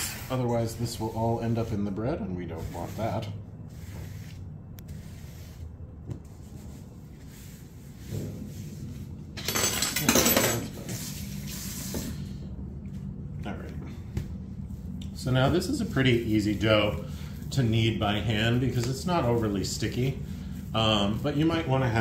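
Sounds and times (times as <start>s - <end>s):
sponge rubbing on countertop: 0.2s - 9.3s, 10.8s - 12.3s, 14.6s - 22.0s.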